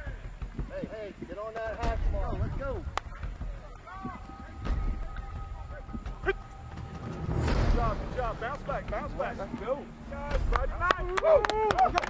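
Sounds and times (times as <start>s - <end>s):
players and coaches shouting: 1.0s - 7.1s, 8.5s - 12.0s
thud: 1.8s - 9.2s.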